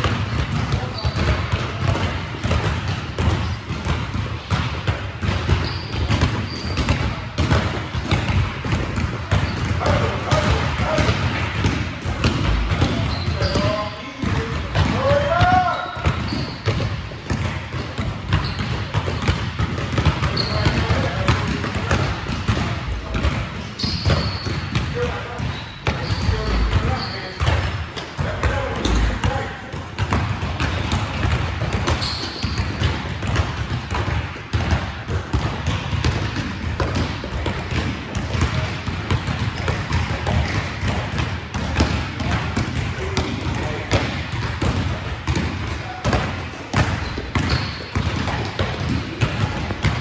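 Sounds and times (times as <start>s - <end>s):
basketballs bouncing on gym floor: 0.0s - 50.0s.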